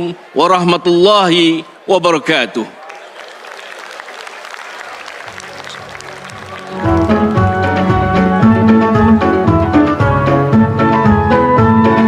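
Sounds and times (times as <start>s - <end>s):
audience applauding: 2.8s - 8.3s
music: 5.3s - 12.0s.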